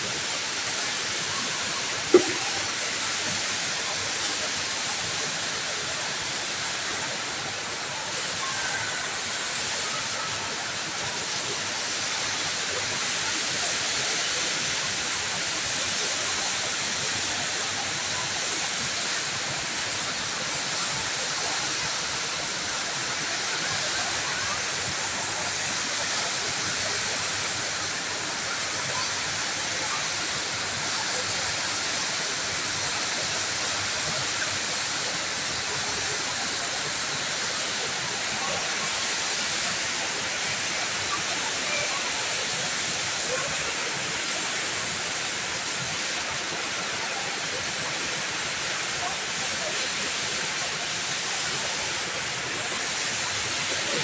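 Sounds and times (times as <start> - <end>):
faint voices: 0.0 - 54.0
indoor waterfall rushing: 0.0 - 54.0.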